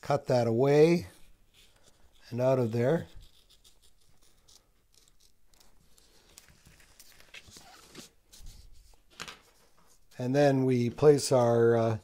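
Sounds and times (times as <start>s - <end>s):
knife scratching through paper: 1.1s - 9.0s
paper rustling: 1.5s - 10.2s.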